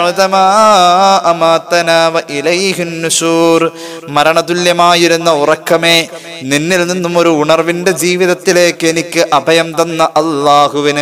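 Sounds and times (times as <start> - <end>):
man chanting melodic recitation: 0.0 - 11.0.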